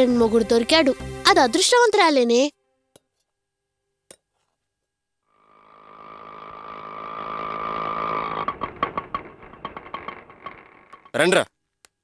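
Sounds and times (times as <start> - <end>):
auto-rickshaw engine running: 5.7 - 11.3
irregular clicks and rattles: 5.9 - 11.2.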